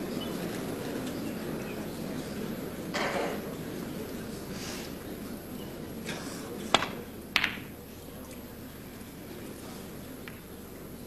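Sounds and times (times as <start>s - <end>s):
crowd murmuring: 0.0s - 11.0s
snooker balls clicking: 6.7s - 7.8s.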